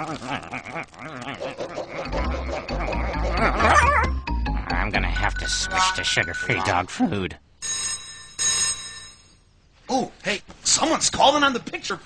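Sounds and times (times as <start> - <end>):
telephone bell ringing: 7.6 - 9.5.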